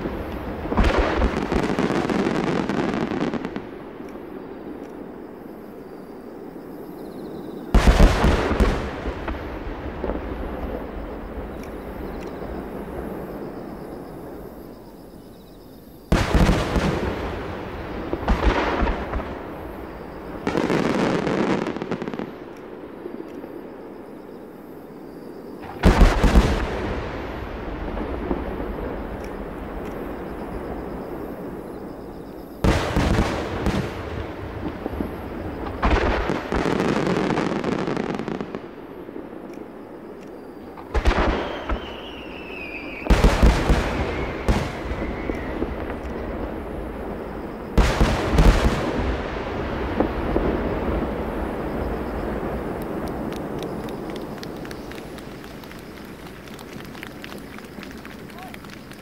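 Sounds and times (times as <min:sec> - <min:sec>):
firework shells booming: 0:16.1 - 0:22.8, 0:25.6 - 0:59.0.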